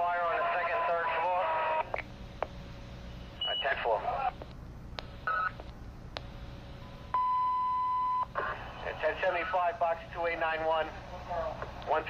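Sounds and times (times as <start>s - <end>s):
radio voice transmissions: 0.0s - 2.0s, 3.4s - 4.5s, 8.4s - 12.0s
radio clicks: 3.6s - 6.4s
steady beep: 7.1s - 8.3s.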